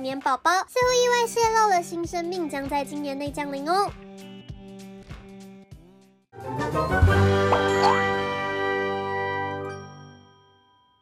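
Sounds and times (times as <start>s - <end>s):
bell-like jingle chord: 7.4s - 11.0s.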